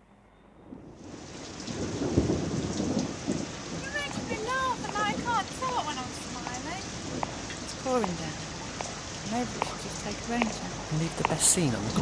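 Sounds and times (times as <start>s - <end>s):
rain: 0.5s - 12.0s
thunder rumbling: 0.6s - 12.0s.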